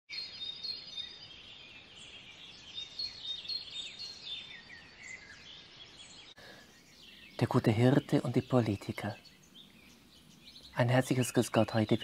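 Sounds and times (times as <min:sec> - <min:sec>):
songbirds chirping and whistling: 0:00.1 - 0:12.0
faint background hiss: 0:00.2 - 0:12.0.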